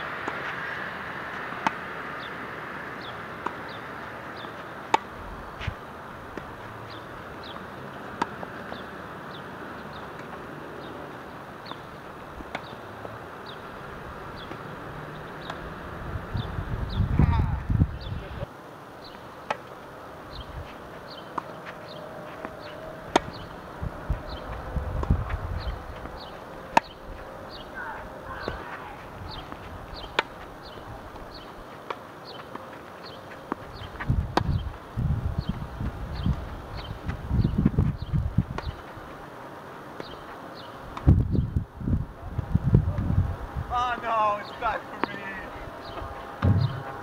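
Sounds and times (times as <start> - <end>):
racket hitting tennis ball: 0.1 - 0.7, 1.3 - 10.9, 11.6 - 12.8, 20.6 - 30.8, 31.8 - 34.7, 45.0 - 47.0
tennis ball bounces: 0.1 - 0.7, 1.3 - 15.8, 19.4 - 19.8, 20.4 - 34.8, 38.4 - 39.0, 39.9 - 40.2, 44.9 - 47.0
wind rumble on microphone: 15.6 - 18.5, 22.6 - 27.3, 28.2 - 31.4, 33.7 - 39.1, 40.9 - 43.7, 45.5 - 47.0.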